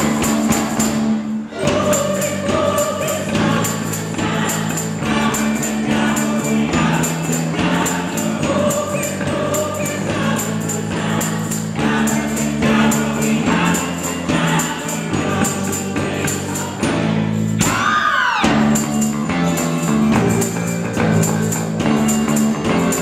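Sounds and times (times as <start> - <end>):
tambourine beat: 0.0 - 23.0.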